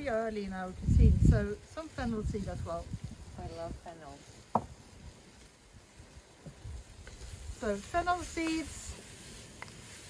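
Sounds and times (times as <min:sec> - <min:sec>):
fire crack: 0:00.0 - 0:10.0
wood fire burning: 0:00.0 - 0:10.0.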